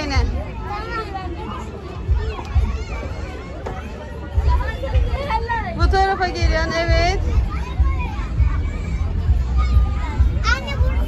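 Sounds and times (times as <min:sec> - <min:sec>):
children's voices and chatter: 0:00.0 - 0:11.0.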